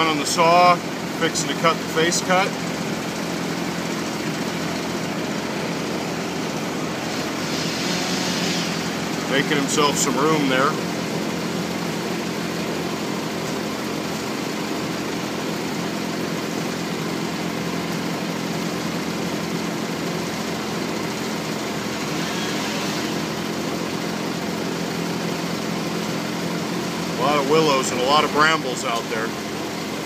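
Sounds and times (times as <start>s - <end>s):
diesel engine idling: 0.0s - 30.0s.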